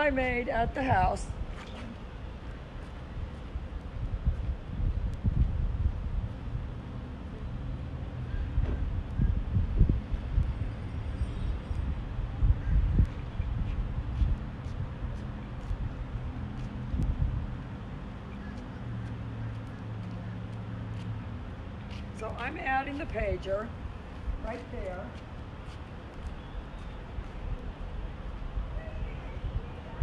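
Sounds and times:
wind gusting on microphone: 0.0s - 19.3s, 21.0s - 30.0s
vehicle engine hum: 0.0s - 30.0s.

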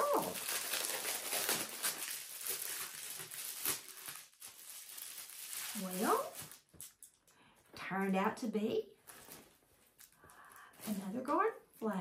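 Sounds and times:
crinkly packaging rustling: 0.0s - 7.7s, 9.0s - 11.6s.

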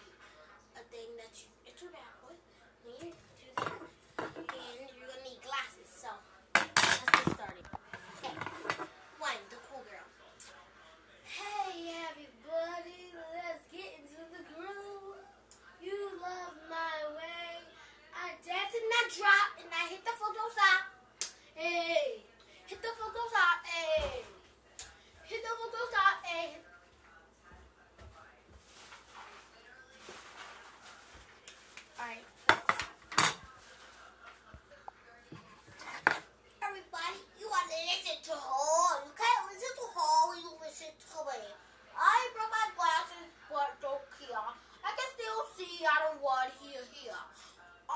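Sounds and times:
quiet rustling: 26.7s - 36.6s.

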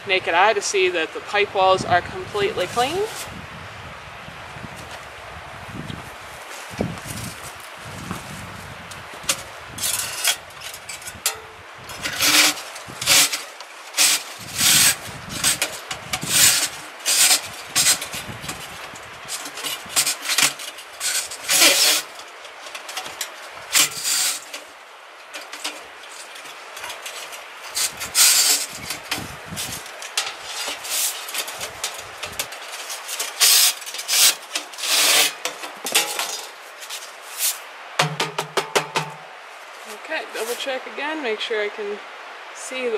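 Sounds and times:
brush scraping inside metal pipe: 9.3s - 37.6s.

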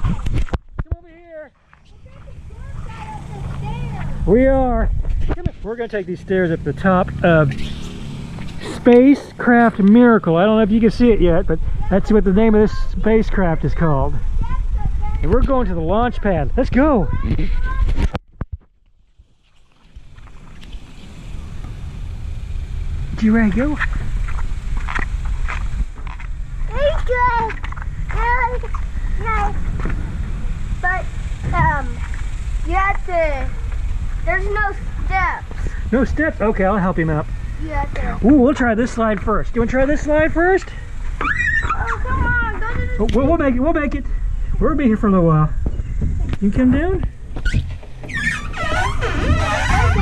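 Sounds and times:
wind rumble on microphone: 0.0s - 1.0s, 8.2s - 18.6s, 19.9s - 36.4s, 39.2s - 50.0s
children squealing and calling out: 1.8s - 4.2s, 41.1s - 43.0s, 47.4s - 50.0s
child calling out: 2.0s - 4.1s, 26.7s - 29.6s, 41.2s - 43.0s.

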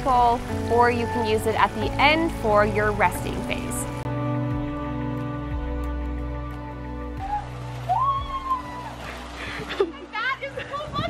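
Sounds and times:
background music: 0.0s - 11.0s
water rushing and splashing: 0.0s - 11.0s.

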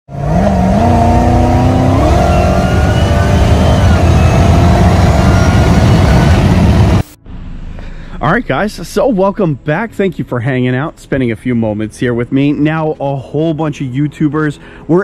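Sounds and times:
car engine at full throttle: 0.1s - 8.5s.

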